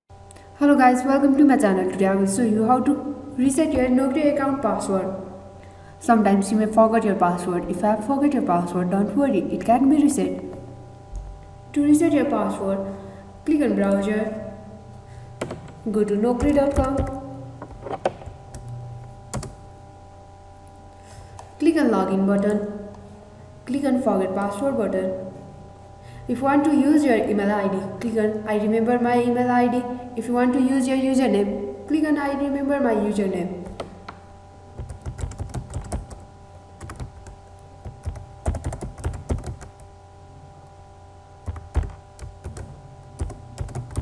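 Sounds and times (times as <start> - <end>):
faint steady hum: 0.1 - 44.0
computer keyboard keystroke: 19.3 - 19.6, 34.8 - 36.2, 36.8 - 39.8, 41.4 - 44.0.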